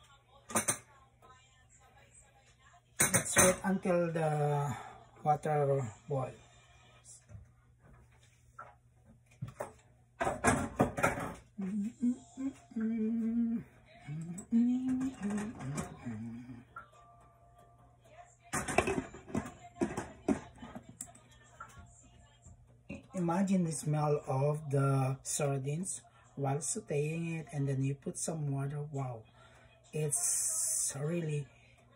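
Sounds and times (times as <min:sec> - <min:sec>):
person humming: 0:11.5 - 0:16.9.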